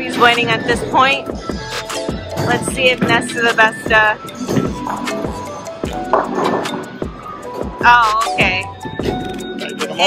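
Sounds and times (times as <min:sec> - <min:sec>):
bowling balls and pins clattering: 0:00.0 - 0:01.2, 0:02.1 - 0:07.8
background music: 0:00.0 - 0:10.0
voices: 0:02.4 - 0:04.6.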